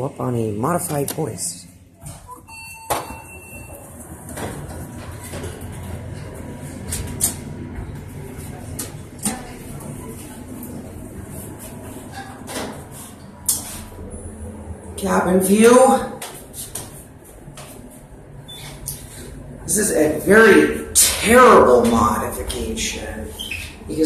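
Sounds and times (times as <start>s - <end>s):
elevator doors sliding shut: 2.1s - 14.7s
elevator cab rumble: 2.5s - 24.0s.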